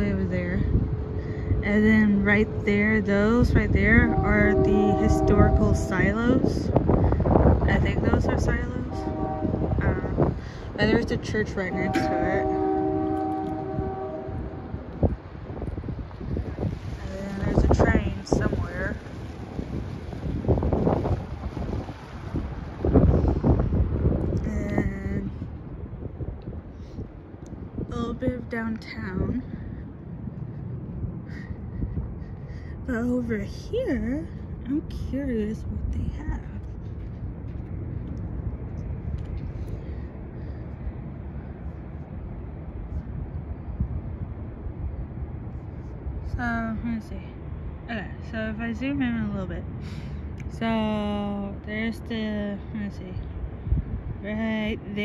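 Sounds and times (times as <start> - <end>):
distant traffic rumble: 0.0 - 55.0
wind buffeting microphone: 0.0 - 55.0.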